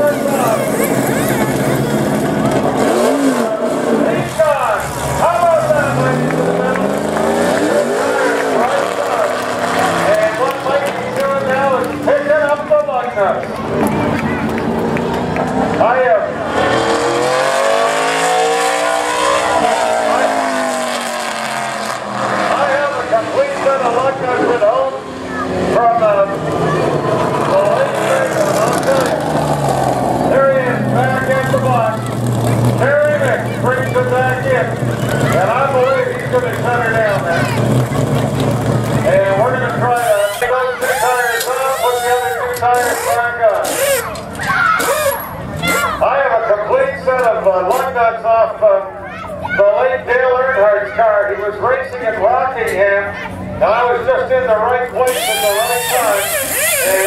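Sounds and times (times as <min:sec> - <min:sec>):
race car engine passing: 0:00.0 - 0:48.5, 0:53.3 - 0:57.0
pneumatic impact wrench bursts: 0:40.0 - 0:44.2, 0:44.8 - 0:45.2, 0:55.1 - 0:57.0.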